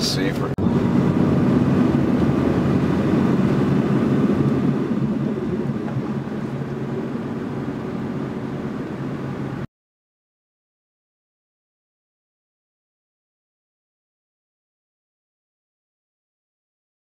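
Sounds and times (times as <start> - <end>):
car cabin road noise: 0.0 - 9.7.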